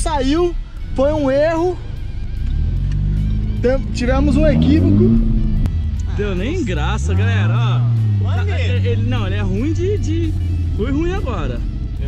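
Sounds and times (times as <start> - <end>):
background music: 0.0 - 12.0
car engine revving: 0.0 - 12.0.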